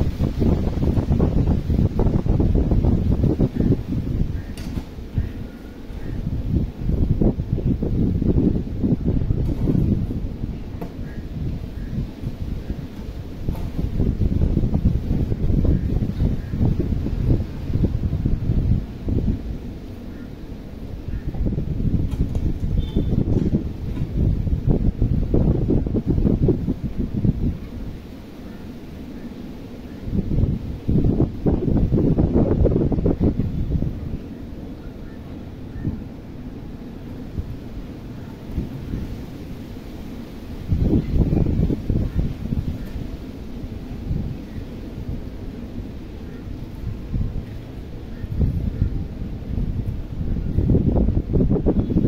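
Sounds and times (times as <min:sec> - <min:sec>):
wind buffeting microphone: 0:00.0 - 0:52.0.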